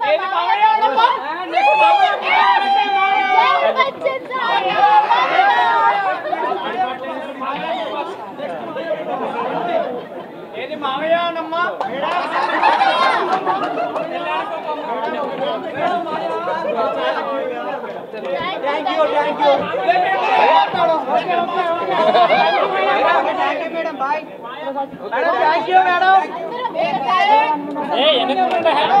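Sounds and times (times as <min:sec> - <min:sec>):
crowd chatter: 0:00.0 - 0:29.0.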